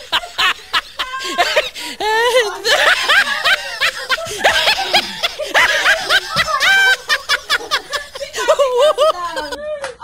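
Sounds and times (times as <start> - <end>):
high-pitched laughter: 0.0 - 10.0.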